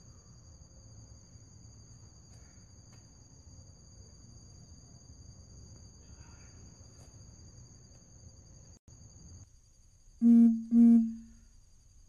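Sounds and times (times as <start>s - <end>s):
loud low beeps: 10.2s - 11.3s.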